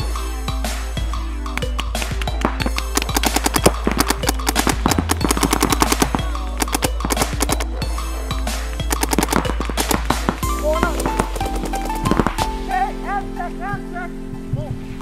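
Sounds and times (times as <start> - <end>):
background music: 0.0 - 15.0
paintball markers firing: 1.5 - 7.8, 8.7 - 12.5.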